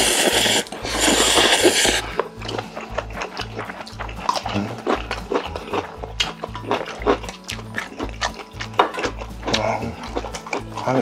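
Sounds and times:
noodles slurped: 0:00.0 - 0:11.0
wet chewing: 0:00.0 - 0:11.0.

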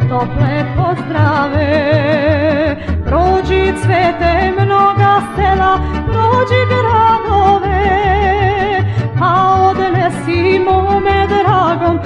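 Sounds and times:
rhythmic bass accompaniment: 0:00.0 - 0:12.0.

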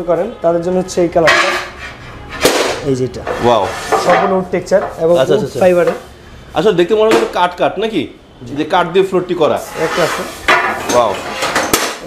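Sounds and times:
voices talking: 0:02.8 - 0:11.3.

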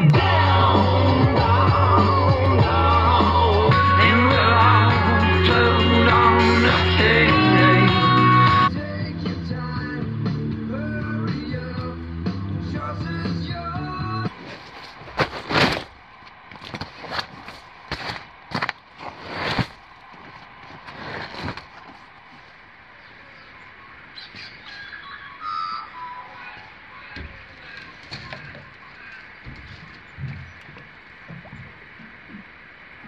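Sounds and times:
folk song with guitar: 0:00.0 - 0:13.9
canvas rustling and flapping: 0:14.3 - 0:22.6.

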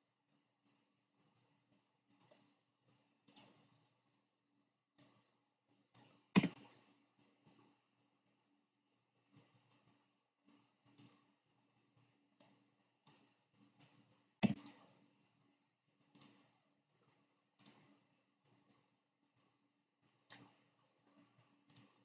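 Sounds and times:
faint clicks and taps: 0:00.0 - 0:22.0.

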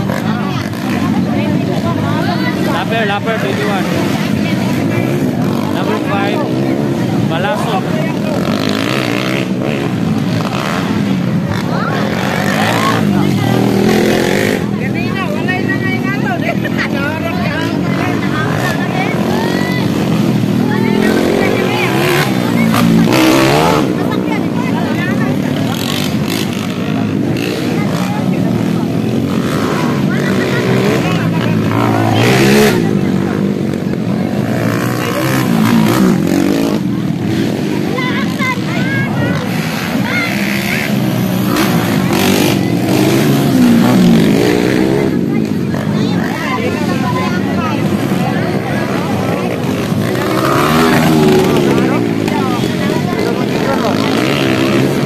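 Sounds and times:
background voices: 0:00.0 - 0:55.0
motorcycle engines revving: 0:00.0 - 0:55.0.

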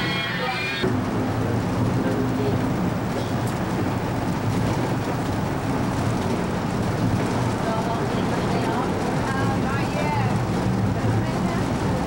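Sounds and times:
vehicle engine and road rumble: 0:00.0 - 0:12.0.

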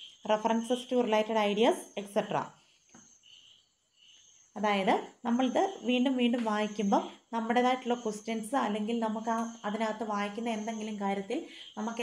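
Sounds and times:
cricket chirping: 0:02.0 - 0:04.8.

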